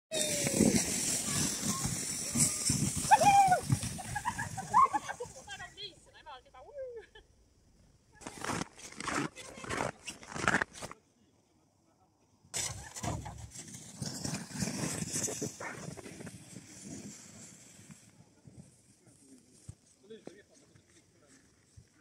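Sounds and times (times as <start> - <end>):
voices calling and shouting: 0.1 - 7.4
short crunches: 8.2 - 11.0.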